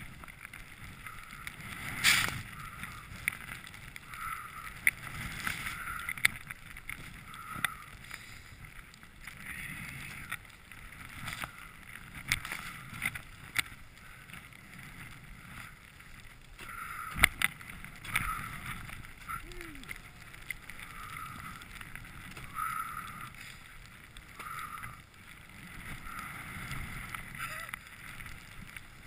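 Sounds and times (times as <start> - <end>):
skis swishing through snow: 0.0 - 4.4
wind rumbling on microphone: 0.0 - 29.0.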